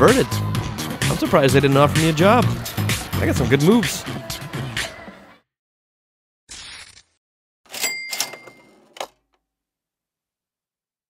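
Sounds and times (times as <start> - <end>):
cash register ka-ching: 7.7 - 9.2.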